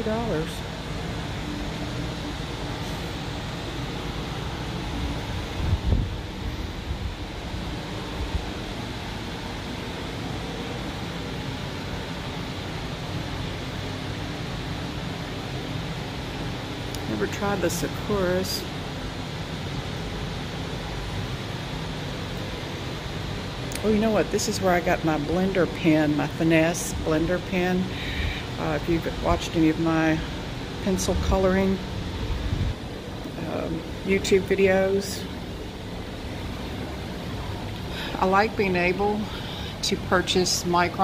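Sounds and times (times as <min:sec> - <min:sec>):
air conditioning hum and hiss: 0:00.0 - 0:41.0.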